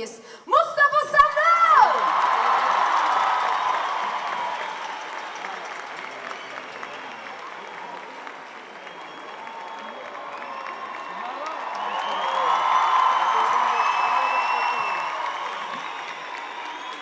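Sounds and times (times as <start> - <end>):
audience applauding and cheering: 1.4 - 17.0.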